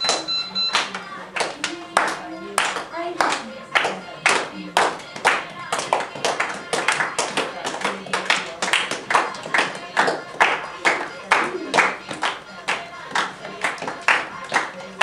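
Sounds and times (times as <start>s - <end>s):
group clapping in rhythm: 0.0s - 15.0s.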